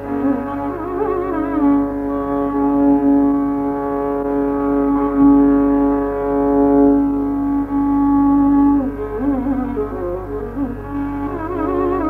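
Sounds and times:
violin holding a long note: 0.0s - 12.0s.

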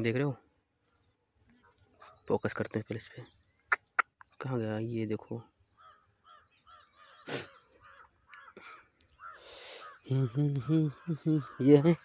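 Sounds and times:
faint bird calls: 0.9s - 4.5s, 5.3s - 12.0s.

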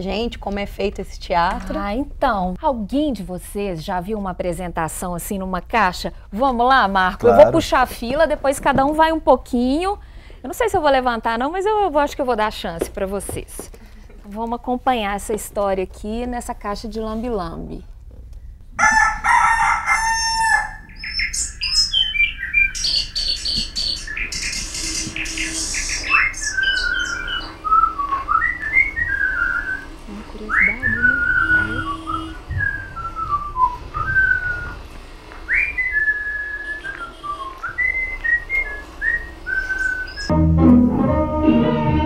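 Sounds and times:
rooster crowing: 18.8s - 20.9s
whistled bird chirps: 21.0s - 34.8s, 35.5s - 40.3s.

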